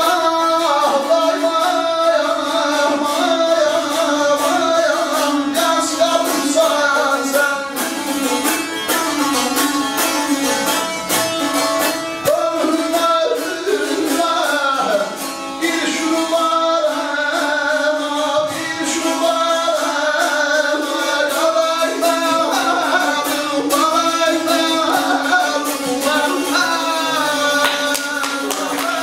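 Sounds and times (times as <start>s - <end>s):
fast-strummed string instrument: 0.0s - 29.0s
person singing: 0.0s - 29.0s.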